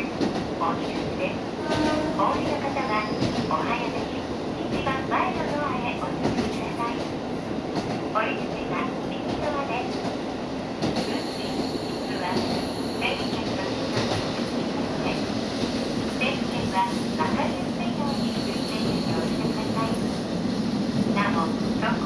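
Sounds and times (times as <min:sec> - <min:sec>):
train wheels rumbling on rails: 0:00.0 - 0:22.0.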